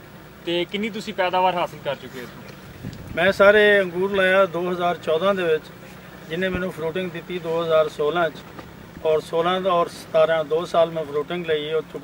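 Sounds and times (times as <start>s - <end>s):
man speaking: 0.4s - 2.5s, 3.2s - 8.4s
wind noise on microphone: 2.5s - 3.8s.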